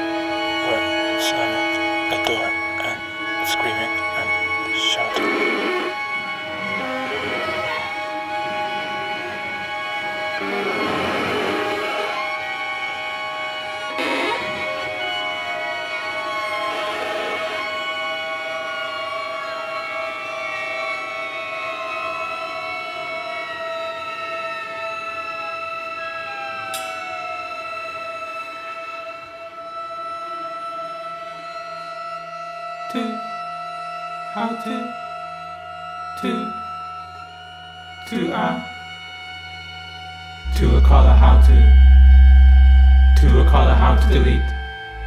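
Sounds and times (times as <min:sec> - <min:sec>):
bowed strings sustained tones: 0:00.0 - 0:18.2, 0:37.8 - 0:45.0
sharp click: 0:26.7 - 0:27.0.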